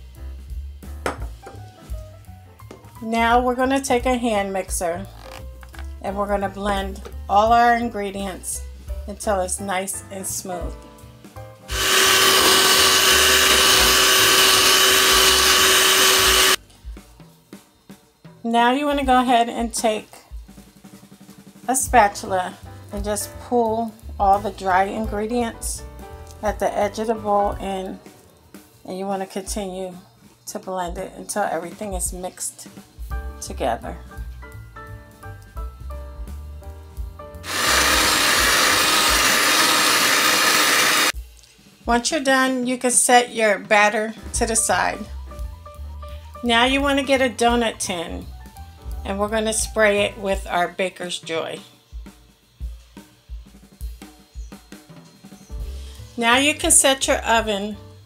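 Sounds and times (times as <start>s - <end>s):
background music: 0.0s - 58.0s
electric hand mixer whine: 11.7s - 16.6s, 37.4s - 41.2s.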